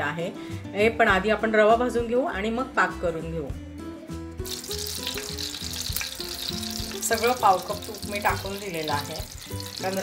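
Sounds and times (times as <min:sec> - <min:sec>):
ghee sizzling in a pan: 0:04.4 - 0:10.0.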